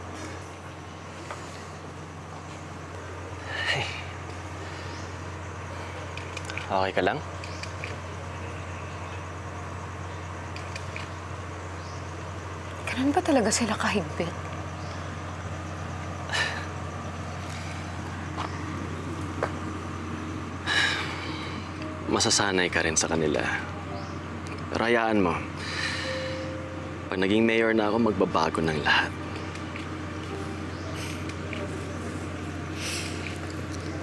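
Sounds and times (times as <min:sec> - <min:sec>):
low background hum: 0:00.0 - 0:34.0
low background rumble: 0:00.0 - 0:34.0
outdoor ambience hiss: 0:00.0 - 0:34.0.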